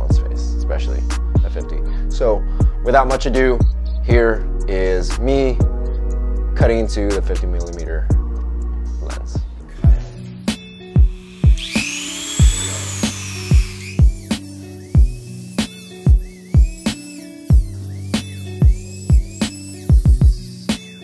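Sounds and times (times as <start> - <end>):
music with drum beat: 9.4 - 21.0
rotary tool cutting plastic: 11.4 - 14.4.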